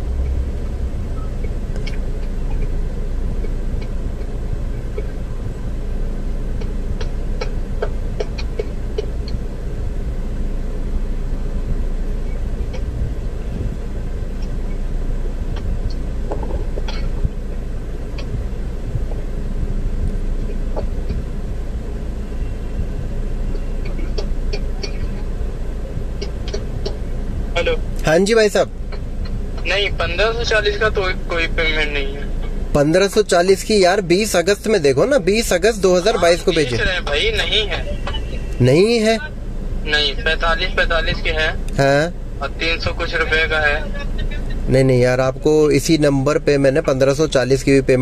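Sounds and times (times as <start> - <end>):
idling engine rumble in cabin: 0.0 - 48.0
ventilation fan: 0.0 - 48.0.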